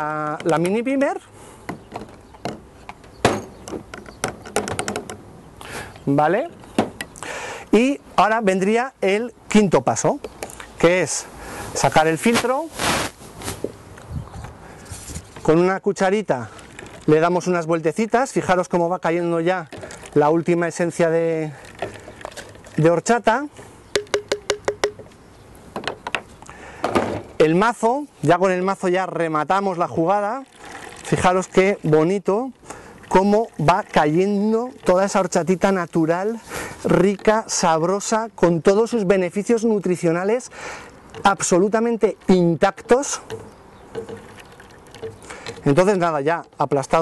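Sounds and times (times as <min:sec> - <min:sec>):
plastic clicks and knocks: 0:01.7 - 0:05.2, 0:24.0 - 0:25.2
wooden spoon tapping a cup: 0:23.9 - 0:25.1, 0:43.3 - 0:44.3.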